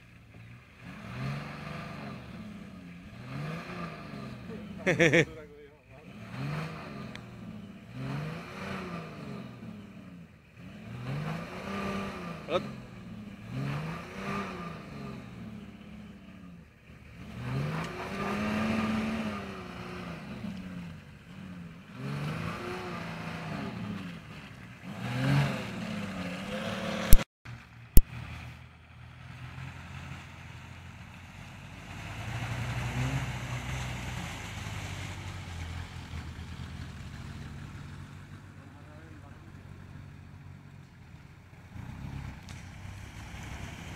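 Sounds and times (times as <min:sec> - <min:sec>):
car engine revving: 0:00.0 - 0:43.9.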